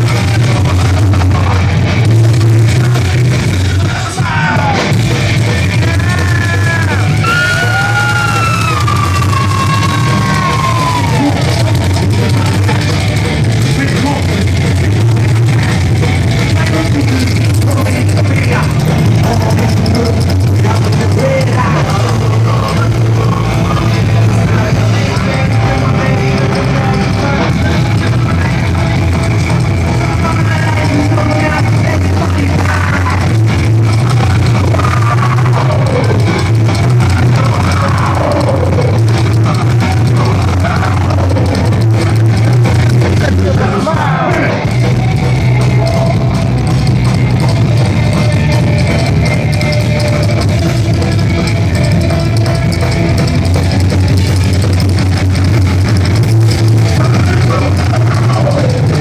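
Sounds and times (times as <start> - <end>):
electric guitar: 0.0 - 59.0
live band playing: 0.0 - 59.0
upright bass: 0.0 - 59.0.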